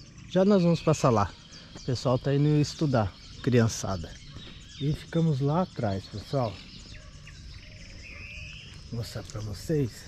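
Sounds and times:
insects steady high tone: 0.0 - 10.0.

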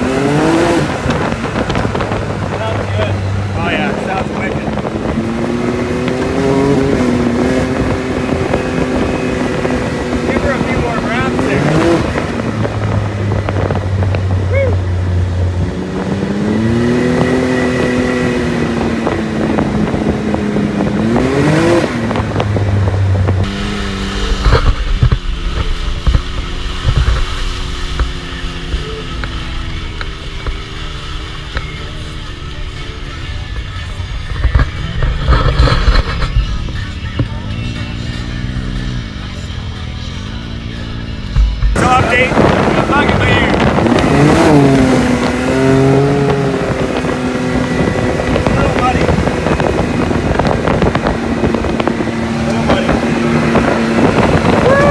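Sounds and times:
engine revving: 0.0 - 54.9.

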